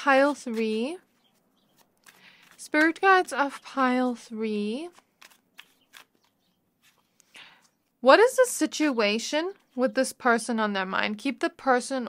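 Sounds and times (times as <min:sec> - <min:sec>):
cards being shuffled: 0:00.2 - 0:07.3.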